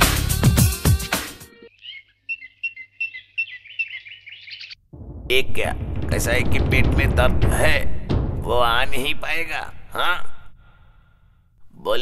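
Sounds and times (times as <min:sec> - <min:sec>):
background music: 0:00.0 - 0:01.7, 0:05.0 - 0:10.4
birds chirping: 0:01.5 - 0:04.9.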